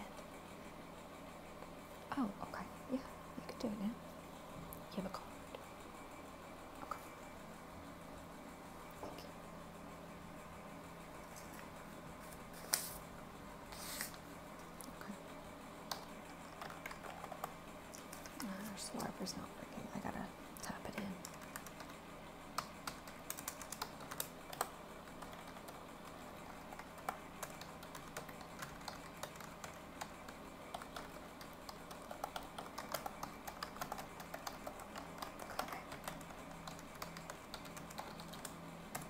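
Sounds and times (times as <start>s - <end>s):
fan noise: 0.0s - 39.0s
computer keyboard key clicks: 22.6s - 25.7s, 26.7s - 39.0s.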